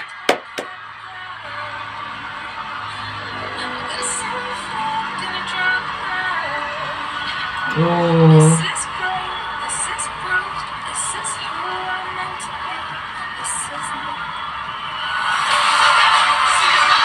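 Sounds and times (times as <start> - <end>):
hand claps: 0.0 - 0.8
crowd cheering and applauding: 0.0 - 1.0, 12.6 - 17.0
music playing: 0.0 - 17.0.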